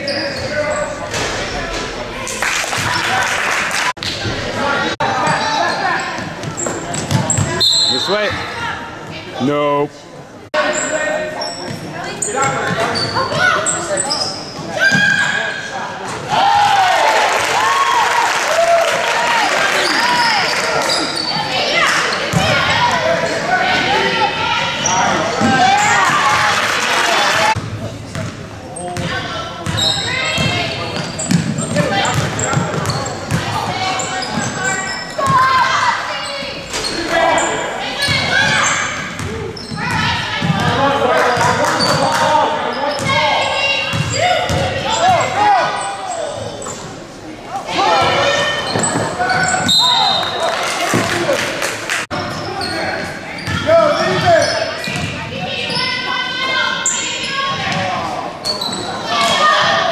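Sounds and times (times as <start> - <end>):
indistinct crowd voices: 0.0 - 59.9.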